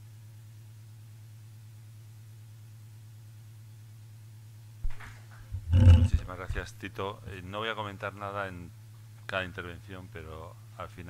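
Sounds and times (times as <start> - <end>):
electrical hum: 0.0 - 11.0
microphone handling thump: 4.9 - 6.4
man's gruff vocal sound: 5.6 - 6.2.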